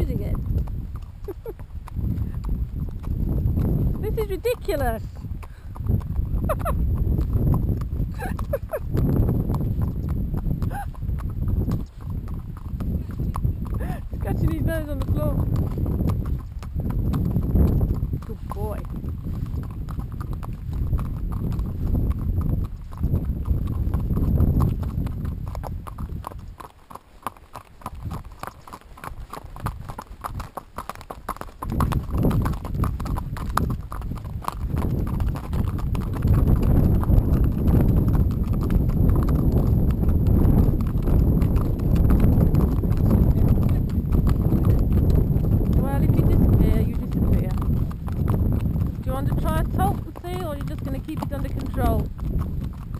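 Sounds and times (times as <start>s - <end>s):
horse hooves on gravel: 0.0s - 52.9s.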